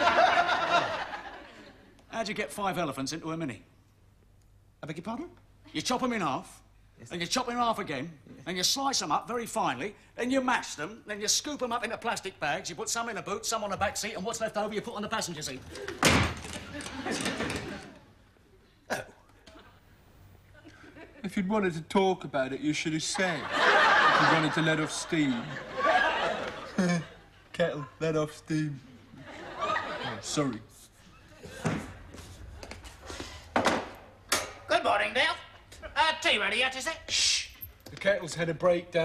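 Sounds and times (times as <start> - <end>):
studio audience laughter: 0.0 - 1.9, 23.2 - 27.2, 29.2 - 30.3
door banging open: 15.8 - 17.8.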